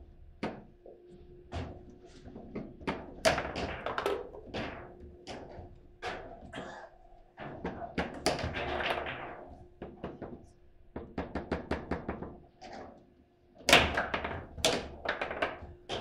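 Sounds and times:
foosball clacks and knocks: 2.5 - 6.2, 7.5 - 10.4, 13.7 - 16.0.

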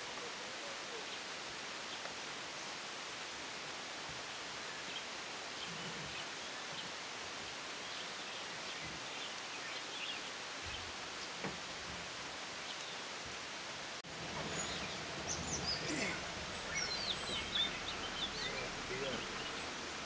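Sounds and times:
steady forest hiss: 0.0 - 20.0
faint bird chirps: 14.3 - 19.8.

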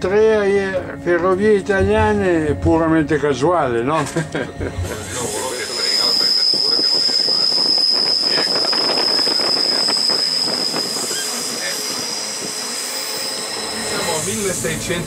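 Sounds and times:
train running: 0.0 - 15.0
train wheels squealing: 5.0 - 15.0.

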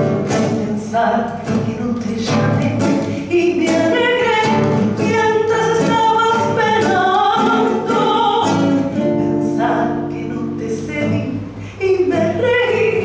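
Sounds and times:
classical guitar: 0.0 - 13.0
woman singing a tango: 0.0 - 13.0.

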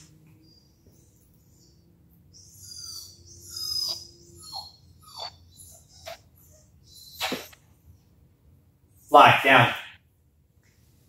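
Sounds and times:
dog whining: 0.4 - 7.7
dog yipping: 0.5 - 7.6.

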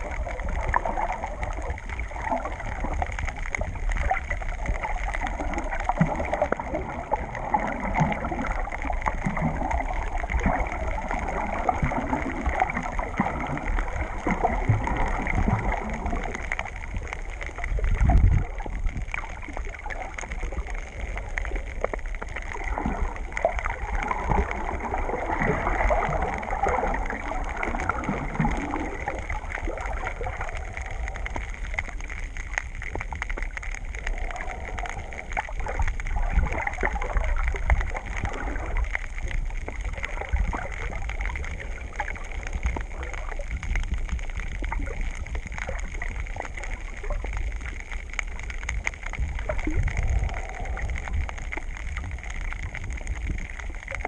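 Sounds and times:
deep rumble: 0.0 - 54.0
muffled underwater wash of water: 0.0 - 54.0
water gurgling: 0.0 - 54.0.

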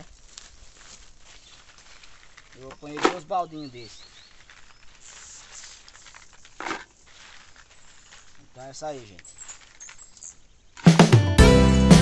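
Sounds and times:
bean plants rustling and crackling: 0.0 - 11.0.

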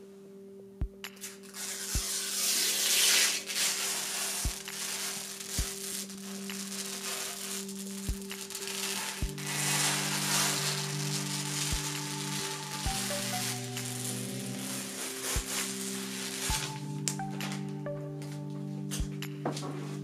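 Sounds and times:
background music with beat: 0.8 - 20.0
plastic film crackling: 1.2 - 19.1.

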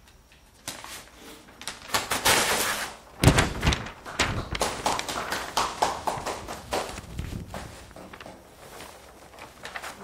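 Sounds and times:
paper rustling and crackling: 0.6 - 10.0.

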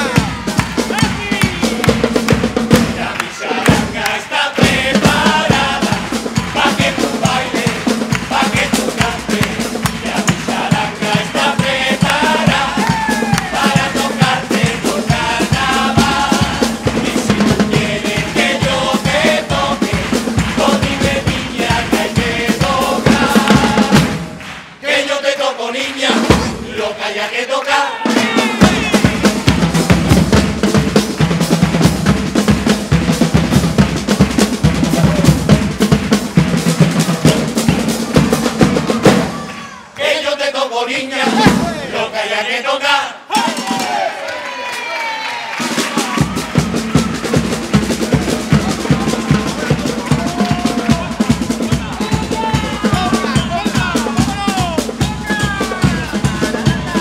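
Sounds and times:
bass drum and snare beating: 0.0 - 24.8, 26.1 - 26.9, 28.1 - 39.5, 41.2 - 42.0, 45.7 - 57.0
brass and wind instruments playing: 0.0 - 30.6.

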